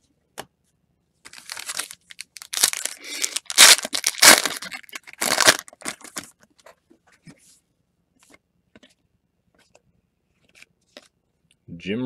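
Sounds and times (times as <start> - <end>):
wrapper tearing and crinkling: 1.3 - 6.4.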